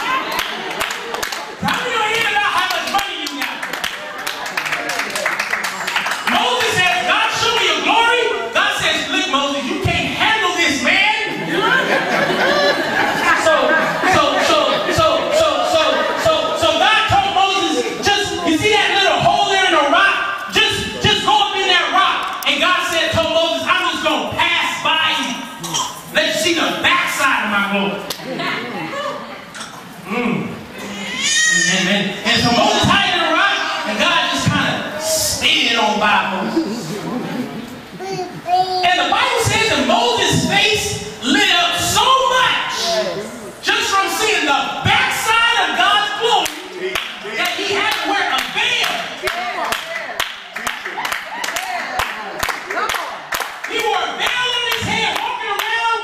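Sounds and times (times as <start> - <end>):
rhythmic hand clapping: 0.3 - 7.0, 46.4 - 55.7
man talking over sound system: 1.6 - 3.7, 6.2 - 11.5, 13.2 - 28.1, 31.6 - 37.2, 38.5 - 49.2, 53.7 - 56.0.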